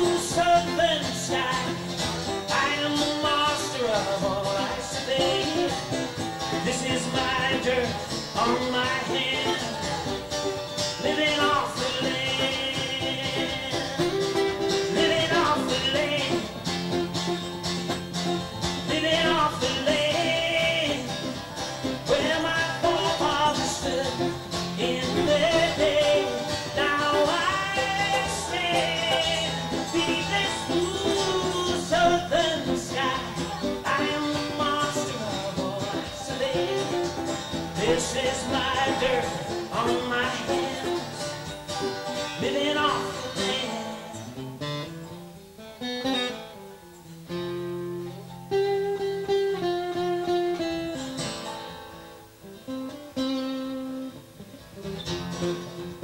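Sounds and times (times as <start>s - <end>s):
man singing into microphone: 0.0s - 10.3s, 10.9s - 16.6s, 18.8s - 41.5s, 42.3s - 44.4s
live country band music: 0.0s - 56.0s.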